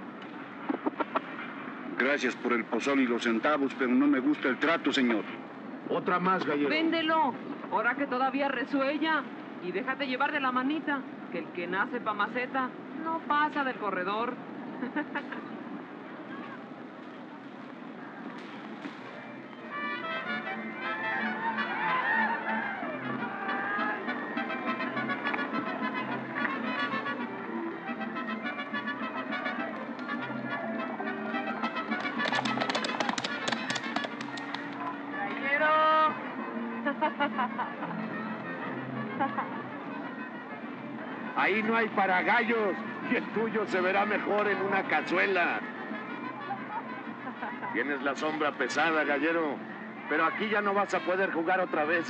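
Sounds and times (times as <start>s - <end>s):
crowd voices: 13.8s - 52.0s
brass band music: 19.6s - 34.6s.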